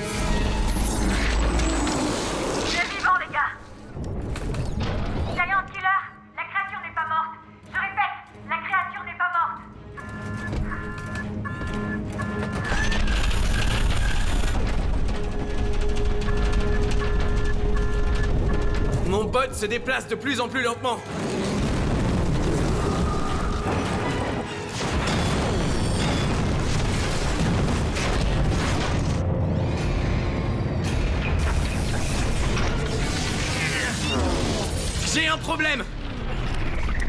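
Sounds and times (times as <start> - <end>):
short electronic beeps: 10.0 - 12.9.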